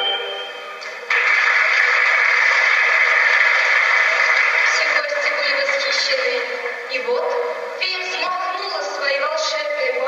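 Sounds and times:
audience applause through tv speaker: 0.9s - 6.6s.

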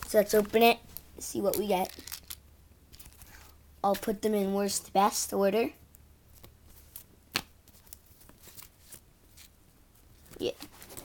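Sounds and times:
cards in plastic holders handled: 0.1s - 4.1s.

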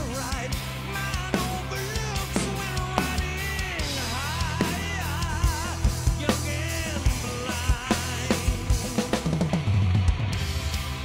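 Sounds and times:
metal song recording: 0.0s - 11.0s
tom drum run: 0.0s - 11.0s.

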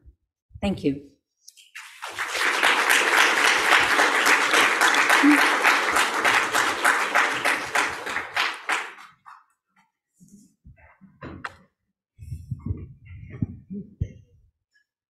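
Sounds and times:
audience applauding: 1.8s - 9.3s.

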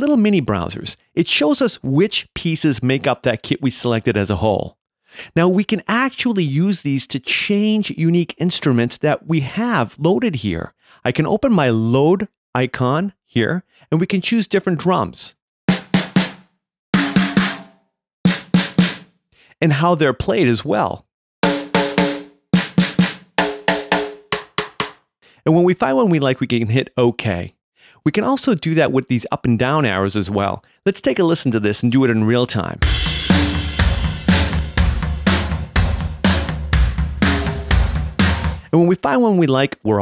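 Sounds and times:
snare drum hits: 15.7s - 16.4s, 17.0s - 19.0s, 21.4s - 25.0s, 32.8s - 38.6s.

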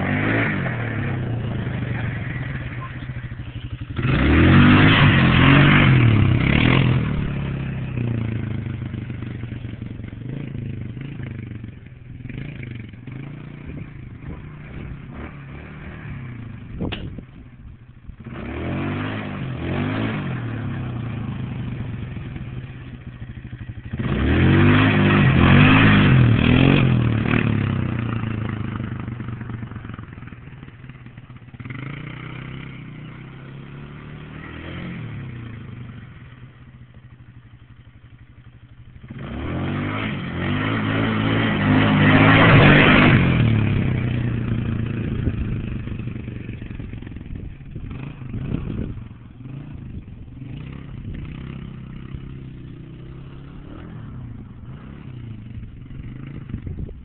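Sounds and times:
atv engine revving: 0.0s - 57.0s.

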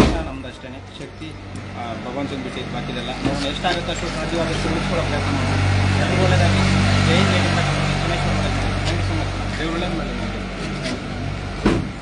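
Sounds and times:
people's voices: 0.0s - 11.9s.

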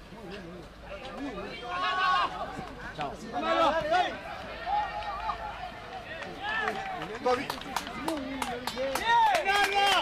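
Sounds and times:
voices shouting calls: 0.2s - 10.0s.

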